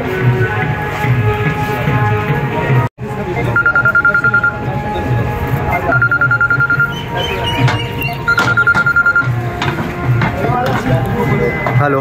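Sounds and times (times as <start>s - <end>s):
trilling phone ringtone: 3.5s - 4.7s, 5.7s - 7.0s, 8.0s - 9.4s.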